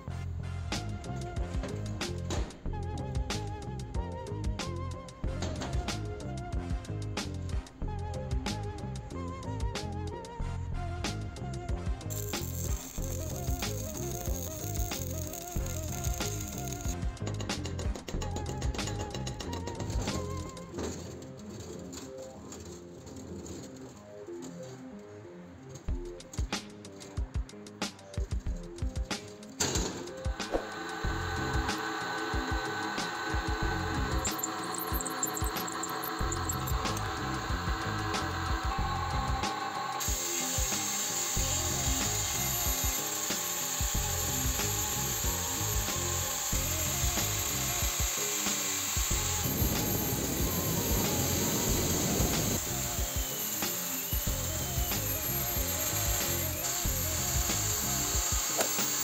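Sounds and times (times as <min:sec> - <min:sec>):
drill press running: 0:12.1 - 0:20.6, 0:29.7 - 0:59.0
angle grinder grinding steel: 0:12.1 - 0:23.9, 0:29.6 - 0:59.0.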